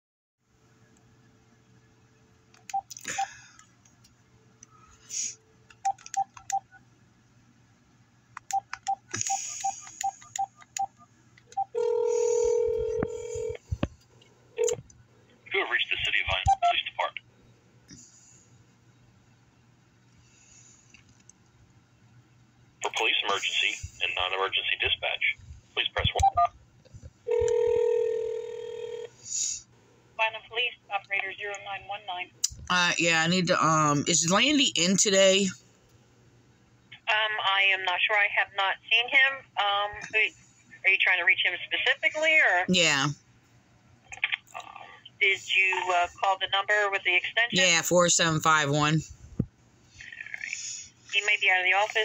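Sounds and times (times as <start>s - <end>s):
phone keypad beeps: 5.9s - 6.7s, 8.5s - 13.3s, 26.2s - 26.5s
phone ringing tone: 11.6s - 13.6s, 27.3s - 29.2s
voice on phone line: 11.8s - 13.6s, 15.5s - 17.2s, 22.8s - 26.5s, 40.9s - 43.1s, 44.6s - 49.0s.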